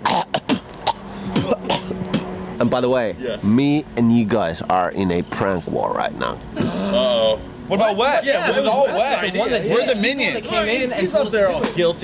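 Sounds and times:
man coughing and spluttering: 0:00.0 - 0:02.3.

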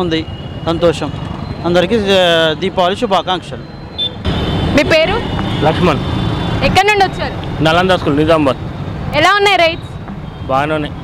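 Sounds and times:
street traffic: 0:00.0 - 0:11.0
people talking: 0:04.8 - 0:06.0, 0:06.6 - 0:08.6.

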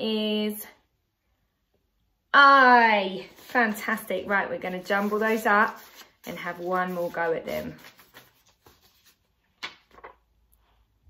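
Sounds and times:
paper cards handled: 0:03.2 - 0:10.3.

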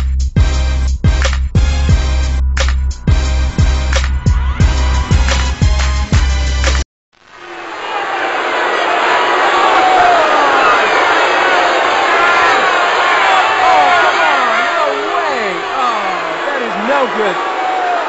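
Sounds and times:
football crowd cheering: 0:07.3 - 0:18.0
individual shouts and whoops: 0:08.9 - 0:11.7, 0:12.4 - 0:18.0.

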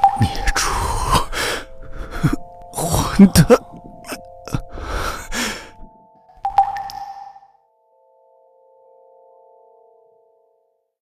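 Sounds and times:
sustained background music: 0:00.0 - 0:10.7.

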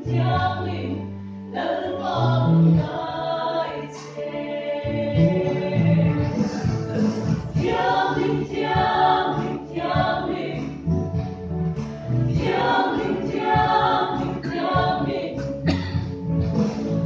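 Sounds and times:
church choir singing: 0:00.1 - 0:11.0, 0:12.3 - 0:15.7.

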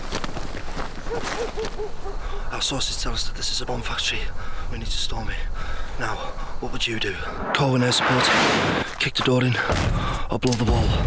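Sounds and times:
hard breathing huffs: 0:05.5 - 0:06.6.

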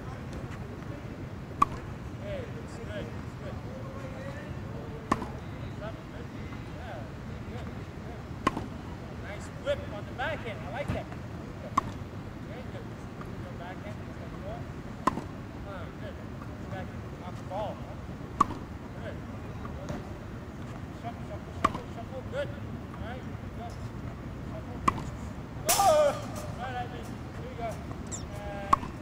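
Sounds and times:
background hiss: 0:00.0 - 0:29.0
faint distant voices: 0:00.0 - 0:29.0
steady background noise: 0:00.0 - 0:29.0
tennis racket hitting ball: 0:01.6 - 0:02.0, 0:08.4 - 0:08.8, 0:15.0 - 0:15.3, 0:18.4 - 0:18.7, 0:21.6 - 0:22.0, 0:24.8 - 0:26.6, 0:27.9 - 0:29.0.

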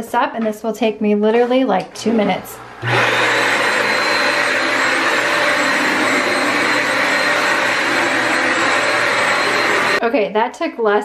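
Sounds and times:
vacuum motor with high whine: 0:02.0 - 0:10.0.

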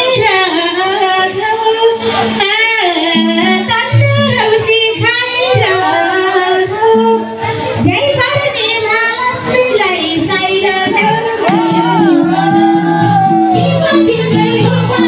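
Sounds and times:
woman singing through a pa: 0:00.0 - 0:15.0.

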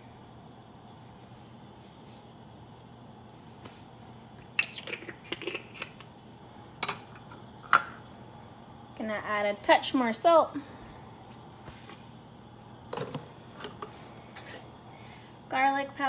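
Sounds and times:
faint steady hum: 0:00.0 - 0:16.0
spice containers clicking and rattling: 0:04.4 - 0:06.1.

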